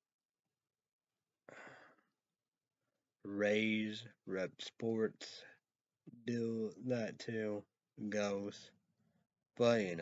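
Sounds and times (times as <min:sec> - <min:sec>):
man sighing: 0:01.5 - 0:02.0.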